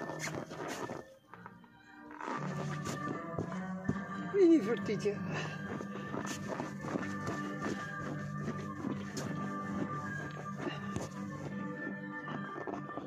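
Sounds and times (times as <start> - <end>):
music with long held tones: 0.0 - 13.0.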